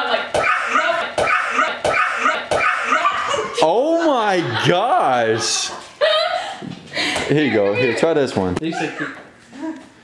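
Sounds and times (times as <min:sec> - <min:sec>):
excited voices: 0:00.0 - 0:06.5
sharp knocks or slaps: 0:01.2 - 0:02.8
laughter: 0:01.6 - 0:06.6, 0:07.2 - 0:09.3.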